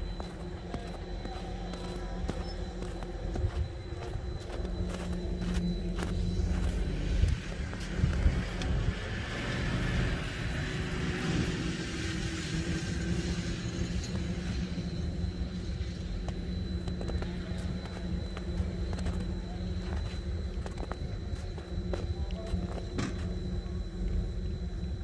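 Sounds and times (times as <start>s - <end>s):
snowmobile engine: 0.0s - 16.4s
low hum: 0.0s - 25.0s.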